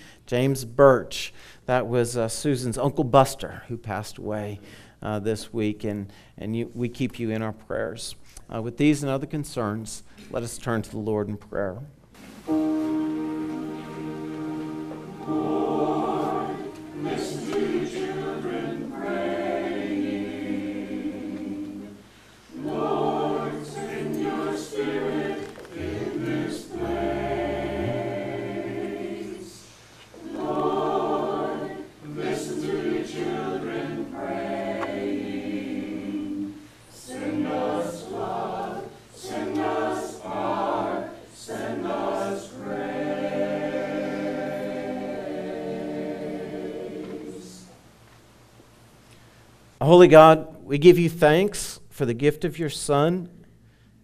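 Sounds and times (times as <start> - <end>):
choir singing a prayer: 12.5 - 47.8.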